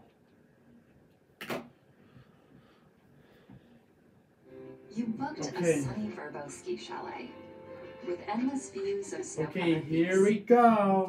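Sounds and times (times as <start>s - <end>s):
music from television speaker: 4.4s - 10.3s.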